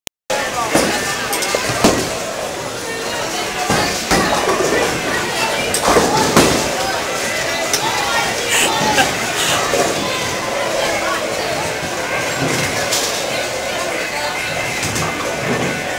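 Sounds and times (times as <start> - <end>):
people talking: 8.4 - 9.8.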